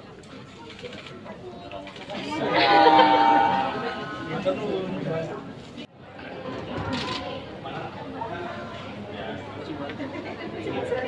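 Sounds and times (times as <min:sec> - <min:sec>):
crowd chattering: 0:00.0 - 0:11.0.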